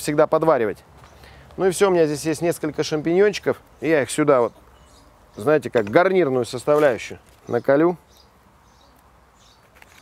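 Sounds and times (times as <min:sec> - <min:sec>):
faint bird chirps: 0:04.4 - 0:05.5.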